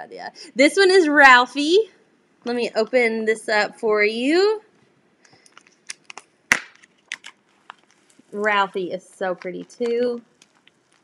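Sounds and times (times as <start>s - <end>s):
plastic bag crackling open: 5.2s - 11.0s.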